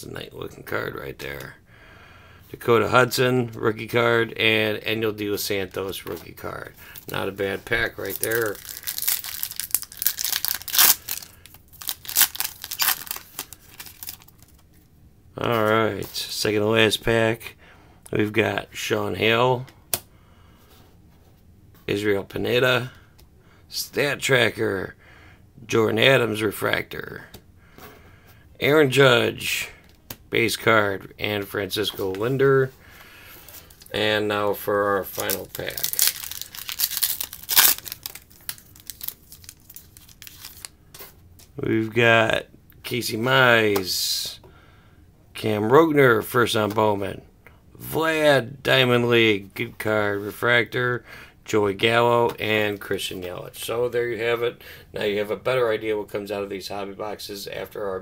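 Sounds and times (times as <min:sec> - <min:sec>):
wrapper crackles: 0:07.8 - 0:14.6, 0:35.0 - 0:40.8
foil wrapper tearing and crinkling: 0:07.9 - 0:14.5, 0:35.1 - 0:40.7.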